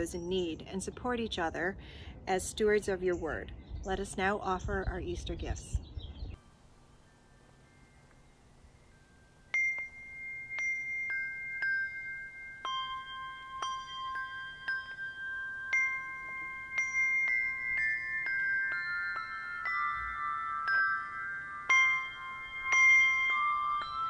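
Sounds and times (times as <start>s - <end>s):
brass handbells ringing: 8.9s - 24.0s.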